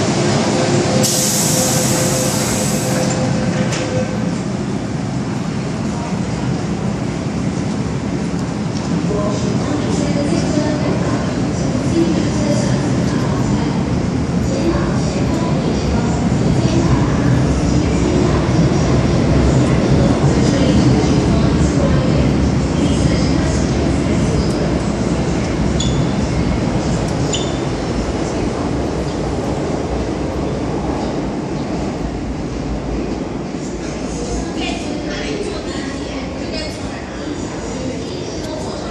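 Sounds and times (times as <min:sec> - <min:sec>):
metro train rumbling: 0:00.0 - 0:38.9.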